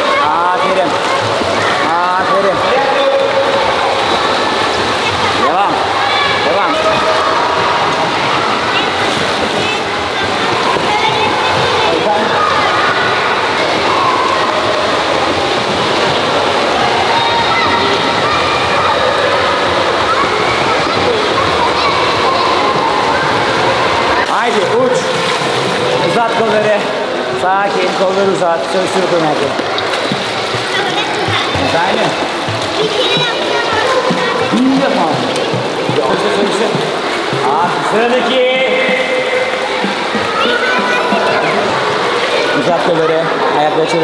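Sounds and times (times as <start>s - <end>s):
children talking and calling: 0.0s - 44.0s
water splashing: 0.0s - 44.0s.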